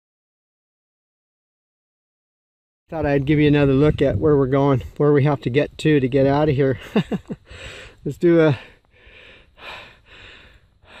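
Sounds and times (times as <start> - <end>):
man breathing hard: 7.4 - 11.0.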